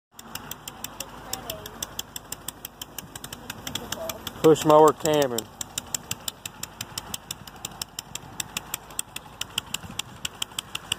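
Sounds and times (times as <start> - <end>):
push mower engine running: 0.1 - 10.9
sharp ticks: 0.1 - 10.9.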